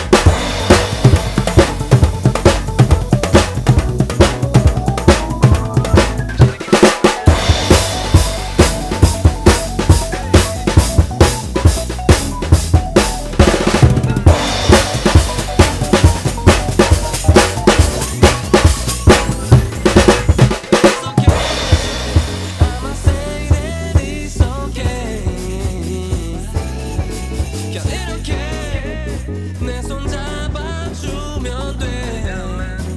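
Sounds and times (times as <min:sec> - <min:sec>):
drum kit groove: 0:00.0 - 0:32.9
instrumental backing with bass: 0:00.0 - 0:32.9.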